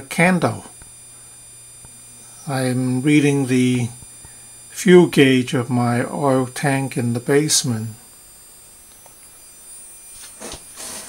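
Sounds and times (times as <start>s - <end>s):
person speaking: 0.0s - 0.8s, 2.4s - 4.0s, 4.7s - 8.0s
faint steady hiss: 0.0s - 11.0s
thin high-pitched whine: 0.0s - 11.0s.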